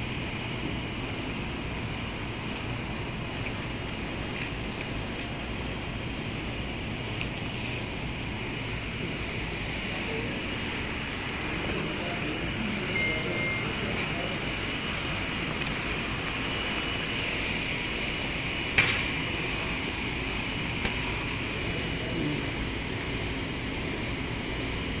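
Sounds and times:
steady background hum: 0.0 - 25.0
faint voices: 3.6 - 23.1.

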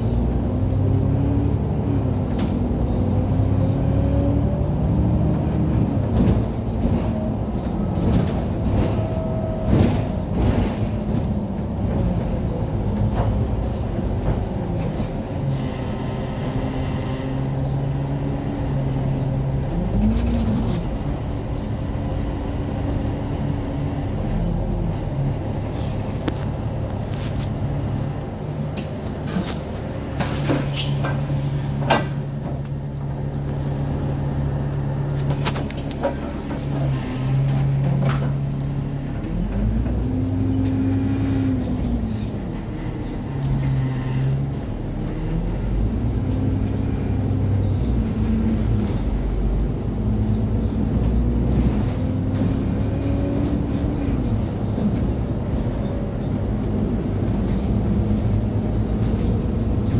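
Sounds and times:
bus engine and road rumble: 0.0 - 59.9.

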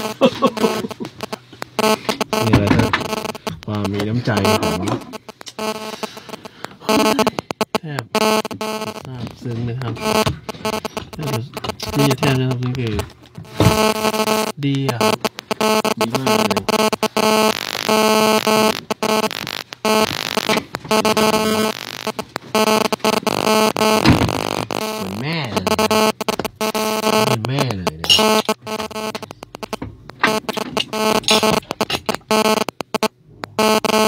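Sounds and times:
person speaking: 0.0 - 6.2, 6.8 - 19.3, 24.8 - 26.2, 27.1 - 28.6
droning hum: 0.0 - 34.0.

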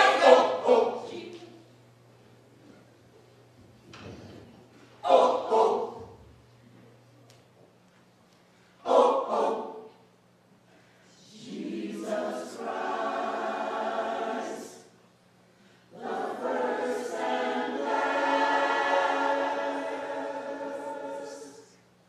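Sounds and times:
gospel choir singing: 0.0 - 1.6, 5.0 - 6.2, 8.8 - 10.0, 11.1 - 21.9.

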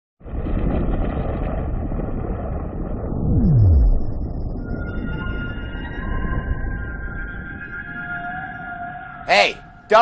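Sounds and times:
deep steady rumbling: 0.2 - 8.6.

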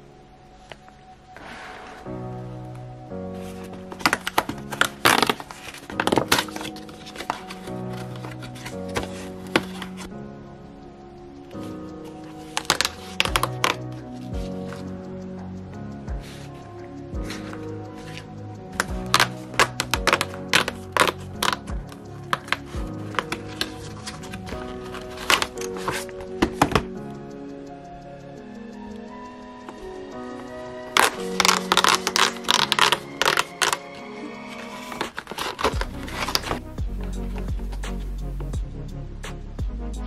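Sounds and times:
background music with sustained chords: 0.0 - 40.0
plastic pouch crinkling: 3.4 - 10.1, 12.2 - 14.9, 17.3 - 26.9, 30.9 - 36.6.

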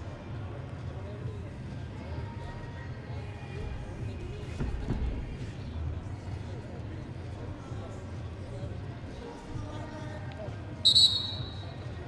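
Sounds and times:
low hum of hall: 0.0 - 12.0
referee's whistle blast: 10.8 - 11.8.

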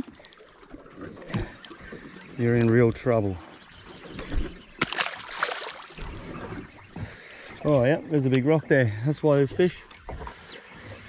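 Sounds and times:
water lapping against hull: 0.0 - 11.0.

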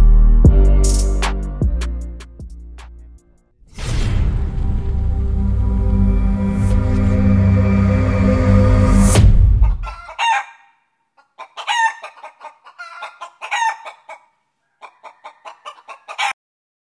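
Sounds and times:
background music: 0.0 - 9.9
chicken clucking: 9.6 - 16.4.

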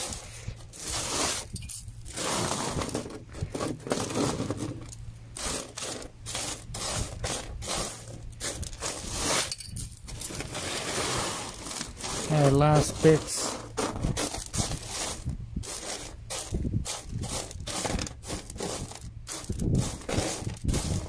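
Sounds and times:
gravel scraping and clinking: 0.0 - 21.0.

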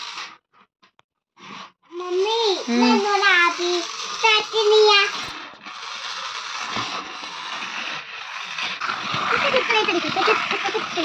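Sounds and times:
toy train rattling whir: 0.0 - 0.7, 1.4 - 11.0
child's voice: 1.9 - 5.4, 9.4 - 11.0.

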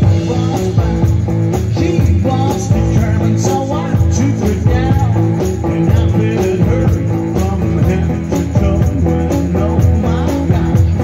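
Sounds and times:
drum kit steady beat: 0.0 - 11.0
electric and acoustic guitars: 0.0 - 11.0.

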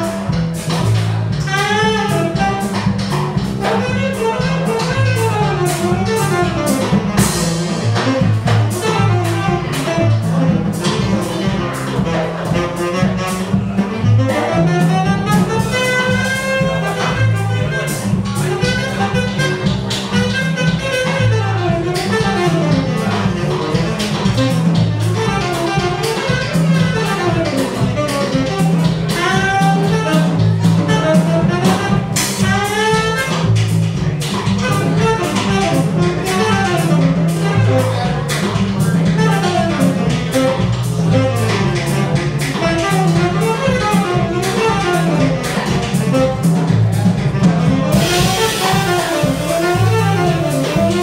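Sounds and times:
plucked upright bass: 0.0 - 51.0
saxophone melody: 0.0 - 51.0
drum kit cymbal strokes: 14.7 - 51.0.

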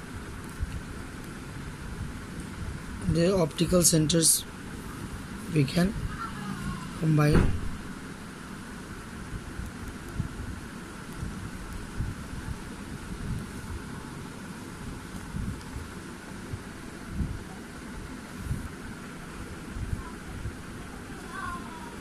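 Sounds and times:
steady background hiss: 0.0 - 22.0
microphone handling bumps: 7.3 - 7.8.

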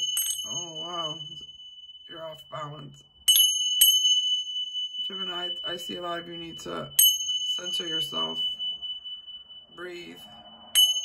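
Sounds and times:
tingsha cymbals ringing: 0.0 - 11.0.

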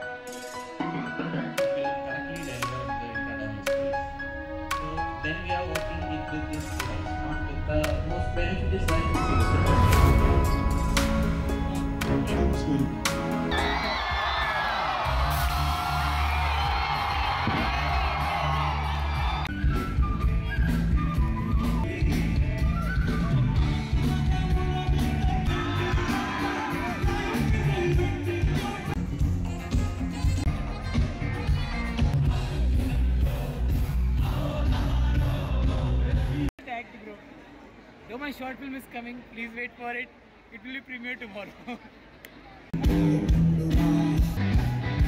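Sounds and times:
loud amplified band music: 0.0 - 36.5, 42.8 - 45.0
band playing held low notes: 1.6 - 13.8
crowd cheering and whooping: 13.5 - 20.4, 24.9 - 28.0, 44.4 - 45.0.

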